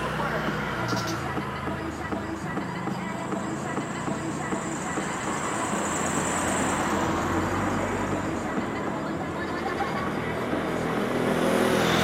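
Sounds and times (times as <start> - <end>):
road traffic noise: 0.0 - 12.0
vehicle passing: 0.0 - 12.0.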